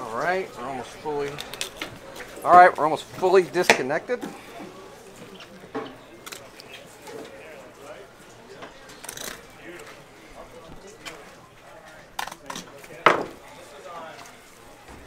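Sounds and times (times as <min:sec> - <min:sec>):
background voices talking: 0:00.0 - 0:15.0.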